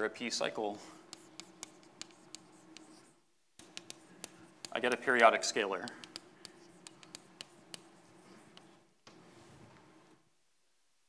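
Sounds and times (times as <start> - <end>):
low room hum: 0.0 - 11.0
chalk tapping and scratching: 0.4 - 9.4.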